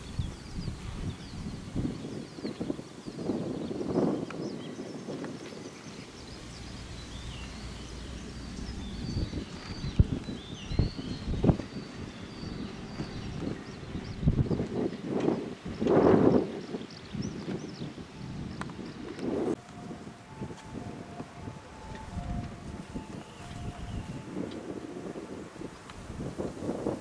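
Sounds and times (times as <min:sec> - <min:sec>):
wind buffeting microphone: 0:00.0 - 0:27.0
faint two-note tone: 0:19.6 - 0:25.4.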